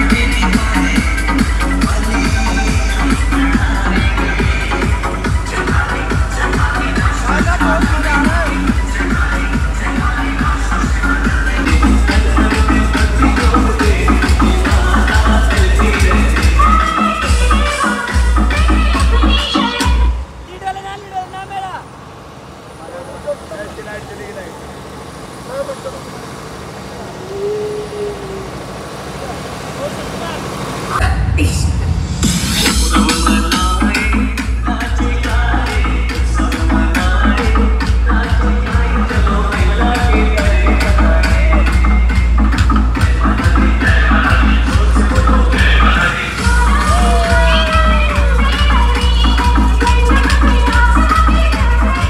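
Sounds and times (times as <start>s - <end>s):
loud dance music with bass: 0.0s - 20.2s, 31.0s - 52.0s
road and vehicle noise: 0.0s - 52.0s.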